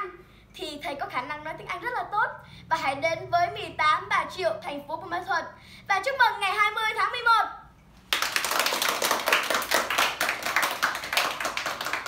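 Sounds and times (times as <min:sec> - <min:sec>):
people clapping: 0:08.1 - 0:12.0.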